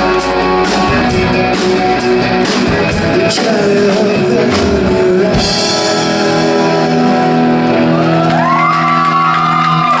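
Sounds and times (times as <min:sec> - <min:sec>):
rock band holding a chord: 0:00.0 - 0:10.0
crowd cheering and whooping: 0:07.6 - 0:10.0.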